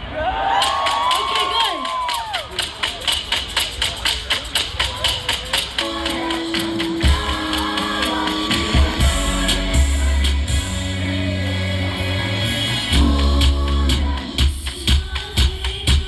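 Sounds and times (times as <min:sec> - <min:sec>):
crowd cheering: 0:00.0 - 0:03.4
live band playing: 0:02.9 - 0:15.9
deep bass: 0:08.7 - 0:14.5.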